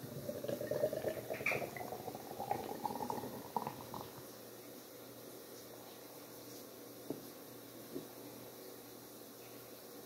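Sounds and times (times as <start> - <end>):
beer pouring into a glass: 0.0 - 4.2.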